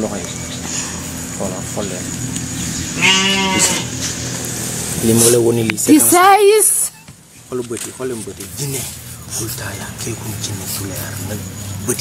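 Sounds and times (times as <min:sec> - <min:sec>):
wavering bleat-like cry: 0:02.9 - 0:04.0.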